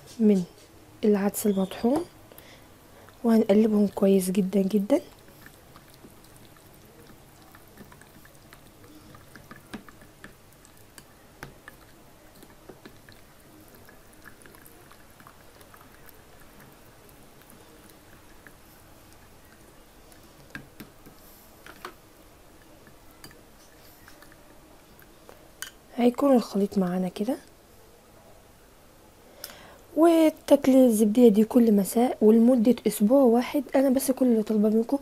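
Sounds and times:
spoon stirring yogurt in glass bowl: 3.0s - 22.0s.

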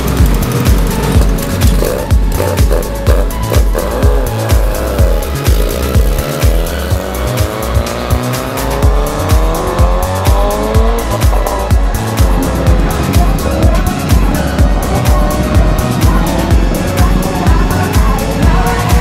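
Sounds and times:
music with heavy beat: 0.0s - 19.0s
racing motorcycle engine revving: 0.0s - 19.0s.

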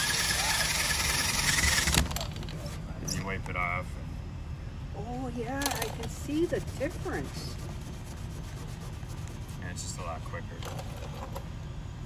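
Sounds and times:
pneumatic eraser wheel whining: 0.0s - 2.2s.

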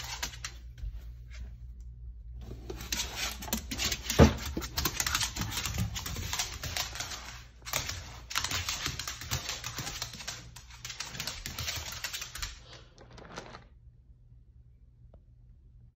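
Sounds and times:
dog claws clicking on tile: 0.0s - 0.8s, 2.8s - 13.6s.

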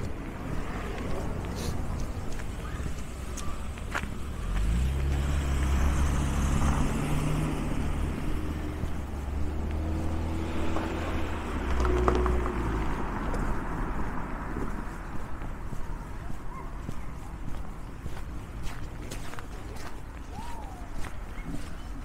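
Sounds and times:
low engine hum: 0.0s - 16.6s
car passing by: 3.4s - 15.4s.

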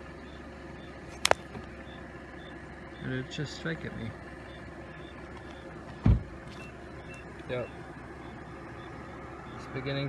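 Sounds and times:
dull thump: 6.0s - 6.4s.

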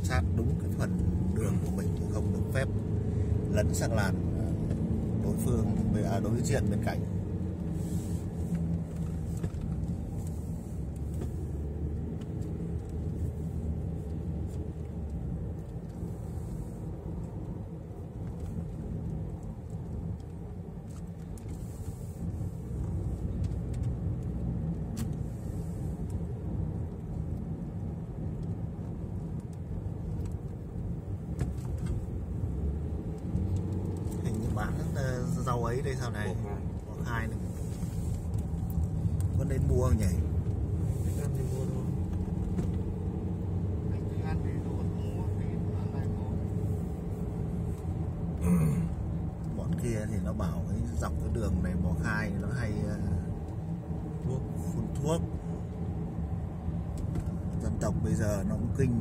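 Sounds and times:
car engine and tyre hum: 0.0s - 59.0s.

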